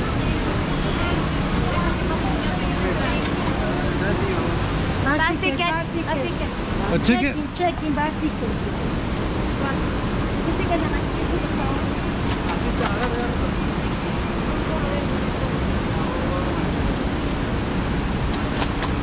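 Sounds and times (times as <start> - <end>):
faint indistinct voices: 0.0 - 17.4
steady rushing noise: 0.0 - 19.0.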